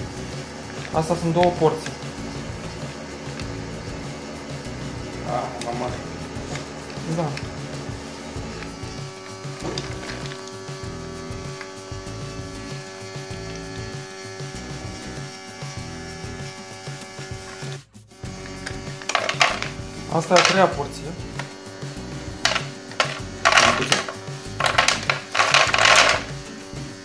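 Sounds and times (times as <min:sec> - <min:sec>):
electric motor humming: 0:00.0 - 0:27.0
dry kibble dispensing: 0:05.3 - 0:10.7, 0:18.9 - 0:21.5, 0:22.4 - 0:26.4.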